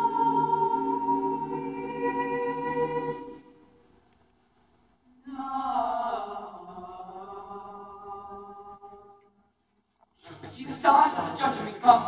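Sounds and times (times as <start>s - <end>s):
choir singing held chord: 0.0s - 3.7s, 5.2s - 9.0s.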